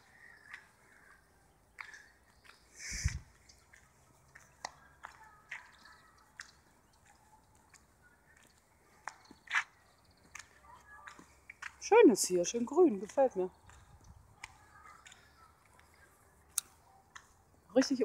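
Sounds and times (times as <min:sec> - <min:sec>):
footsteps on stony ground: 0:00.0 - 0:18.0.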